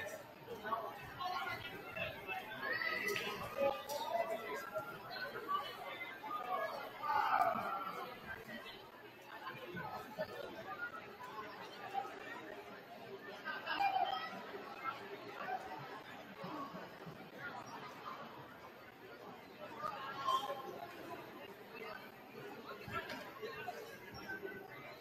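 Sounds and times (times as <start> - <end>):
indistinct chatter of people: 0.0 - 25.0.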